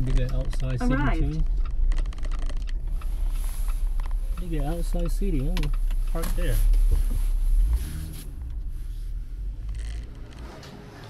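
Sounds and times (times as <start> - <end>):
car engine and road rumble: 0.0 - 11.0
rustling scrape: 1.9 - 4.8, 6.0 - 10.7.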